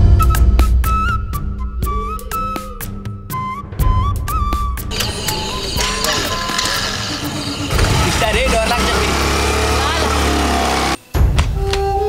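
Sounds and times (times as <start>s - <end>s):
background music: 0.0s - 12.0s
scooter engine running: 4.9s - 11.0s.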